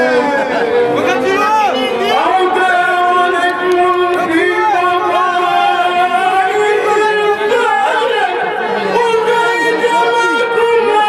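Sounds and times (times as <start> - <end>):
man chanting through microphone: 0.0 - 11.0
people talking: 0.0 - 11.0.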